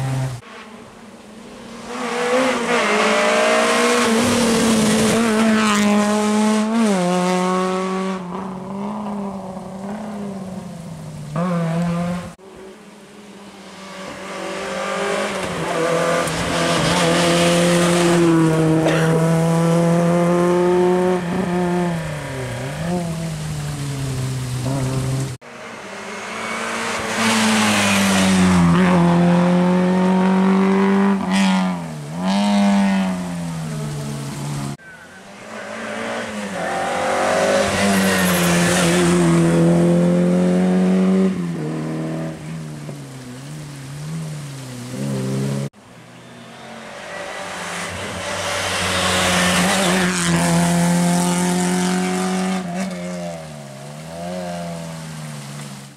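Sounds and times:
rally car engines at full throttle: 0.0 - 55.9.

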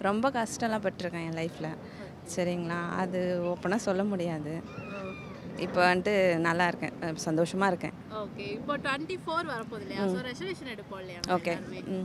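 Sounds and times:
woman speaking: 0.0 - 4.6, 5.6 - 8.0, 11.2 - 12.0.

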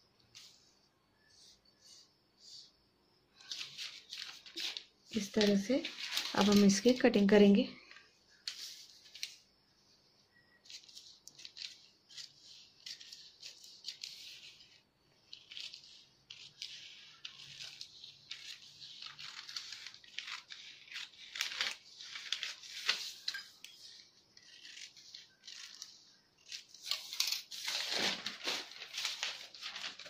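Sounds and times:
paper rustling: 3.4 - 7.3, 8.4 - 9.4, 10.6 - 30.0
scissors snipping newspaper: 15.4 - 30.0.

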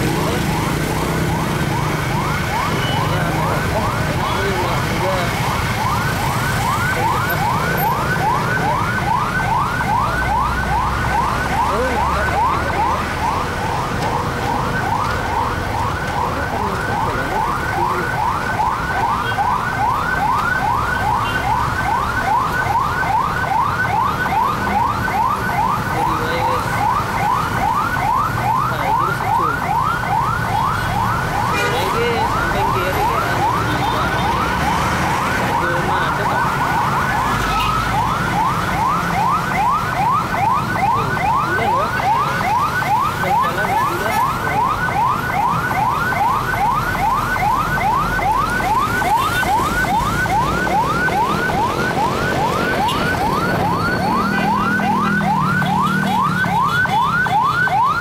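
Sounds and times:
electronic siren yelping: 0.0 - 58.0
motorcycle and traffic engines: 0.0 - 58.0.

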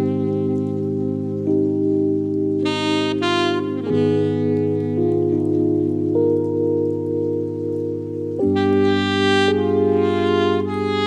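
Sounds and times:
backing track held chords: 0.0 - 11.0
saxophone sustained notes: 0.0 - 11.0.

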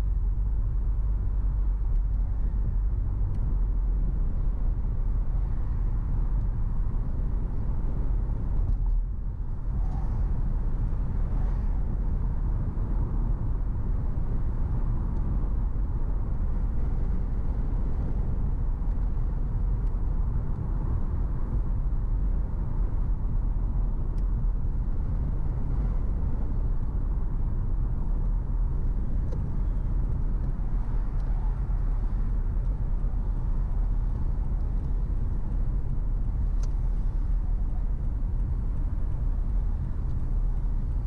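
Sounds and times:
car driving road rumble: 0.0 - 41.0.

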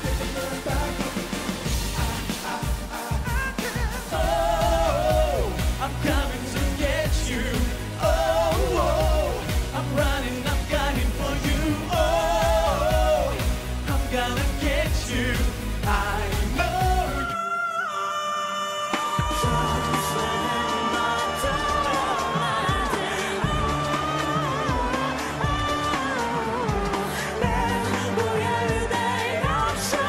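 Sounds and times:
steady beat: 0.0 - 17.2
man singing pop song: 0.0 - 30.0.

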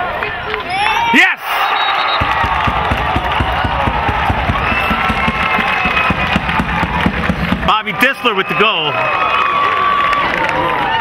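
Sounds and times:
spectators cheering and shouting: 0.0 - 11.0
dull thumps near microphone: 2.2 - 7.8.

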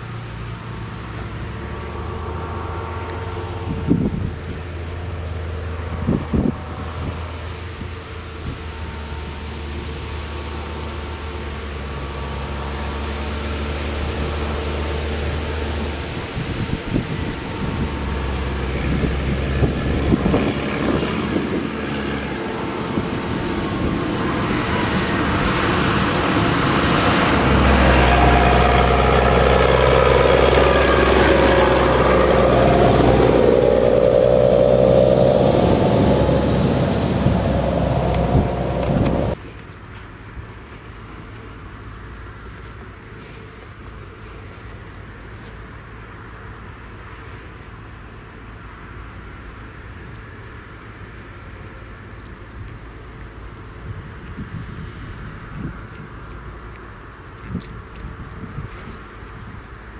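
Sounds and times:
tractor diesel engine passing: 0.0 - 39.4.

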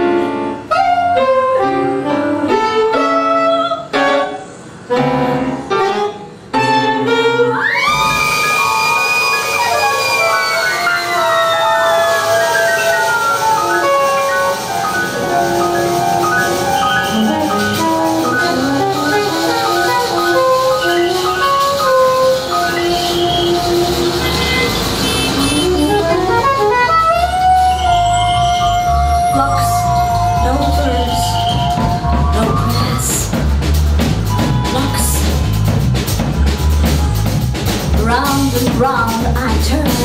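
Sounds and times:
keyboards: 0.0 - 40.0
saxophone: 0.6 - 2.7, 5.7 - 33.2
drums: 7.6 - 40.0
low pulsing bass: 25.7 - 40.0.

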